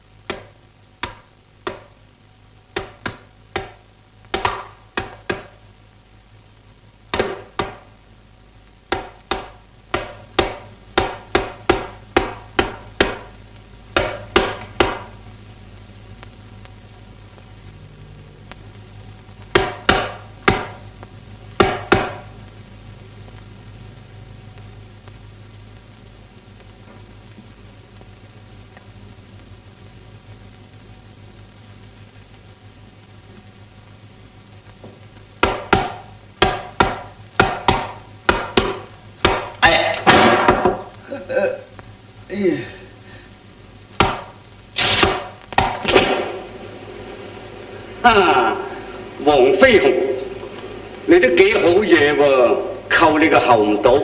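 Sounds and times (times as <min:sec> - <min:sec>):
sharp punches and blows: 0:35.4 - 0:40.8, 0:44.0 - 0:46.4
struck percussion beats: 0:35.4 - 0:40.9.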